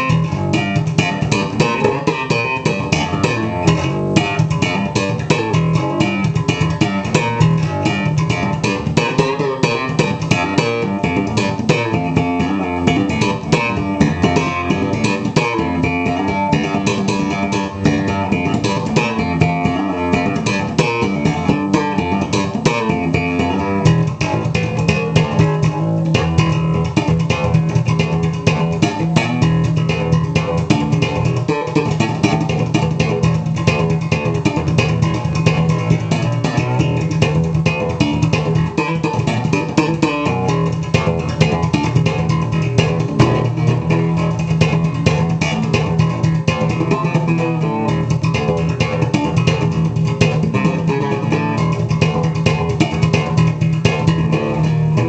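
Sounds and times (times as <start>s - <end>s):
slap bass guitar playing: 0.0s - 55.0s.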